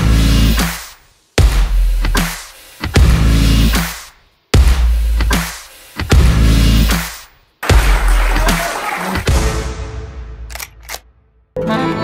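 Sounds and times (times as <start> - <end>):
electronic music: 4.6 - 9.6
quick clicks: 10.5 - 11.0
accordion music: 11.6 - 12.0.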